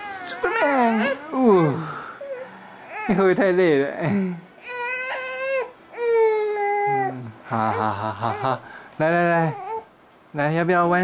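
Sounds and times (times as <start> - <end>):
baby crying: 0.0 - 3.2, 4.6 - 8.6, 9.4 - 9.9.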